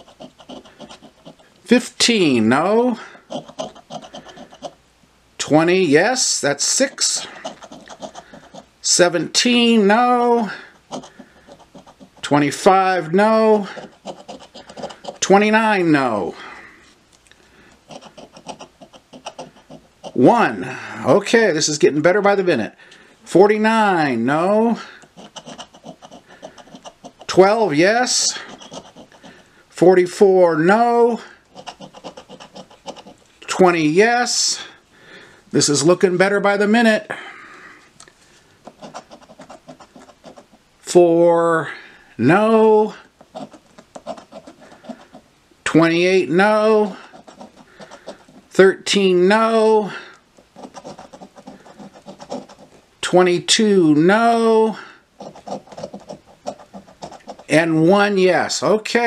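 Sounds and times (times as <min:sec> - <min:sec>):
coin scratching a ticket: 0:00.0 - 0:01.6, 0:02.4 - 0:04.8, 0:06.2 - 0:15.9, 0:17.8 - 0:20.3, 0:25.0 - 0:29.5, 0:31.5 - 0:33.3, 0:38.7 - 0:40.6, 0:43.3 - 0:45.9, 0:46.5 - 0:48.6, 0:50.4 - 0:52.8, 0:55.2 - 0:57.8.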